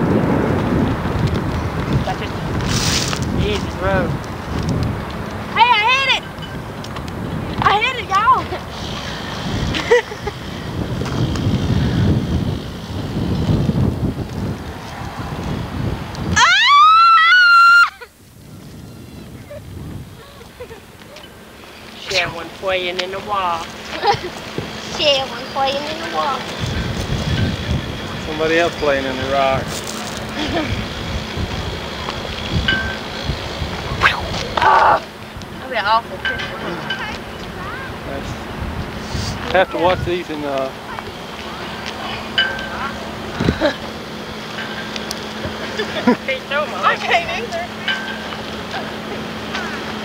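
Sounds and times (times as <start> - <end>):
heavy rumbling wind: 0.0 - 50.0.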